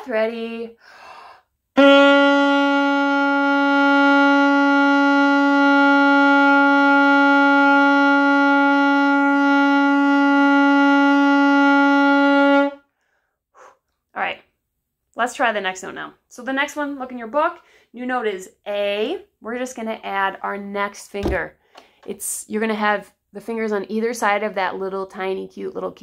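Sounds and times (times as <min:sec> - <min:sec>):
saxophone long tone: 0:01.8 - 0:12.9.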